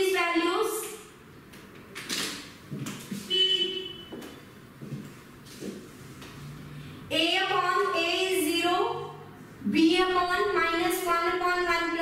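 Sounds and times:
high-pitched horn toot: 3.3s - 4.2s.

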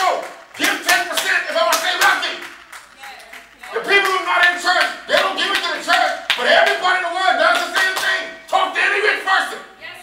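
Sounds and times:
congregation clapping: 0.0s - 9.0s.

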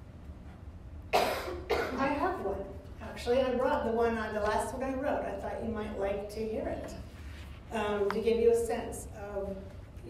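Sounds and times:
person coughing: 1.1s - 2.2s.

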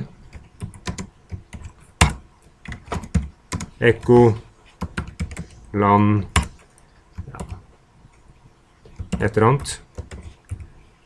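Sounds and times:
typing on computer keyboard: 0.3s - 4.1s, 4.8s - 5.6s, 8.9s - 10.7s.

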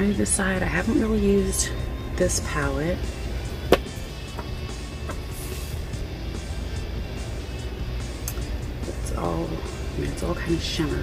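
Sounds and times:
soft background music: 0.0s - 11.0s
steady low hum: 0.0s - 11.0s.

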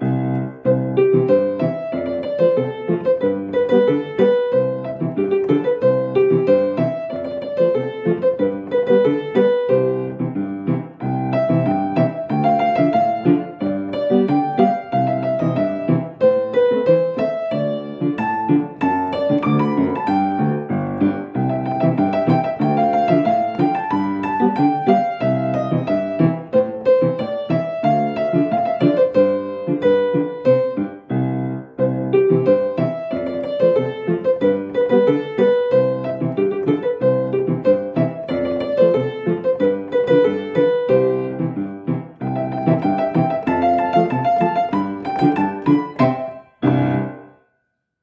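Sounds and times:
solo piano playing: 0.0s - 48.0s.

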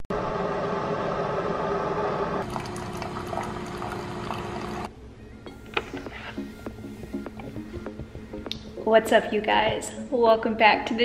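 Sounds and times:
pump hum: 0.2s - 4.9s
coffee maker water pouring: 2.4s - 4.9s.

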